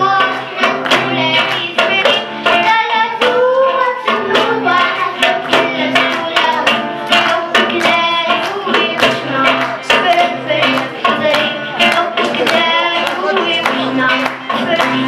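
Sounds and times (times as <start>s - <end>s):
acoustic guitars strummed: 0.0s - 15.0s
children singing: 0.0s - 15.0s
goblet drum beat: 0.0s - 15.0s.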